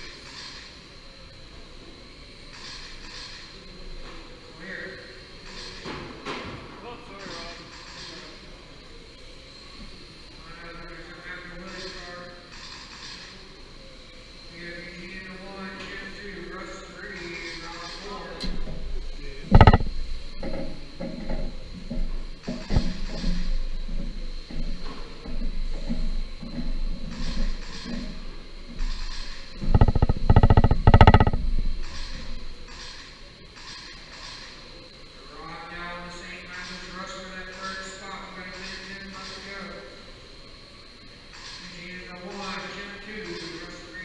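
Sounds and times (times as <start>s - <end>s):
sharp knocks: 19.5s - 28.1s, 28.7s - 32.5s.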